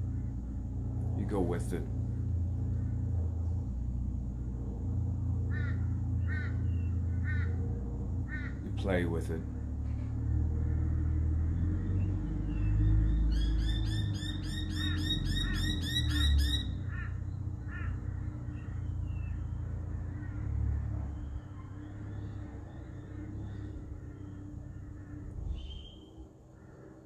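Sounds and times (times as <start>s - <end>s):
steady low rumble: 0.0s - 27.0s
bird calling repeated arching notes: 5.4s - 9.6s, 10.4s - 27.0s.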